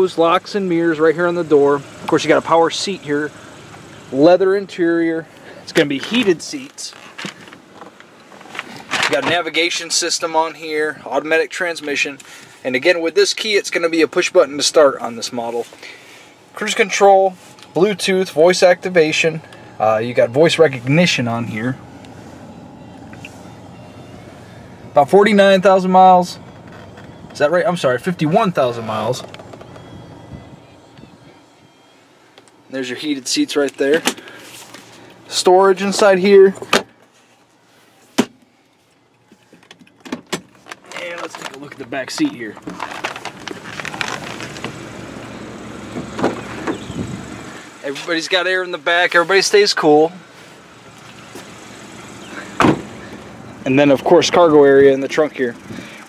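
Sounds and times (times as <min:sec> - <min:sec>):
car cabin hum: 0:16.4 - 0:33.9, 0:39.0 - 0:55.9.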